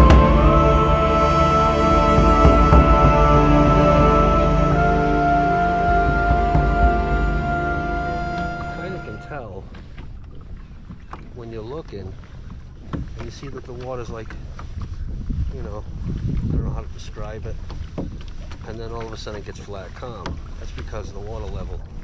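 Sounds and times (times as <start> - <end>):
wind rumble on microphone: 0.0 - 22.0
man talking: 8.6 - 9.7.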